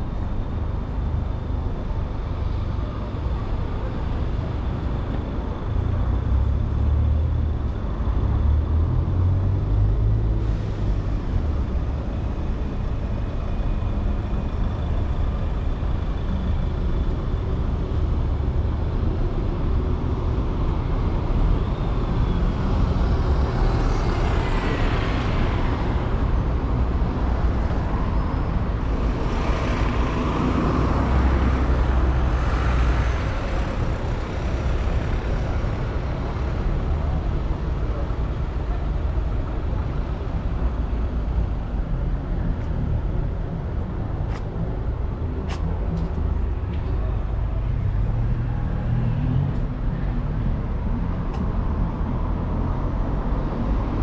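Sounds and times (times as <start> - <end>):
traffic engine rumble: 0.0 - 54.0
vehicles passing close: 0.0 - 54.0.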